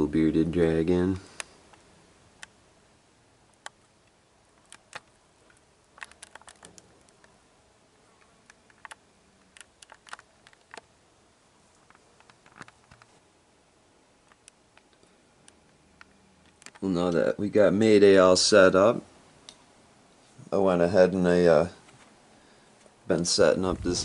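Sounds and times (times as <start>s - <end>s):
faint low hum: 0.0s - 24.0s
faint small clicks and ticks: 3.5s - 7.4s, 8.2s - 10.9s, 11.7s - 13.2s, 14.2s - 16.9s.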